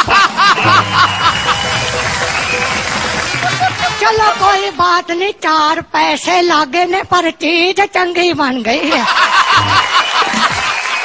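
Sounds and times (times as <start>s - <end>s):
high-pitched laugh: 0.0s - 1.6s, 9.0s - 10.8s
background music: 0.1s - 6.6s, 9.3s - 11.0s.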